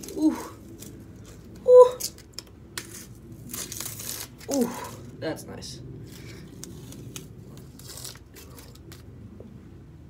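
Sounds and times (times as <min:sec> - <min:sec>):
tape peeling off crackling: 0:00.0 - 0:05.2, 0:06.0 - 0:09.2.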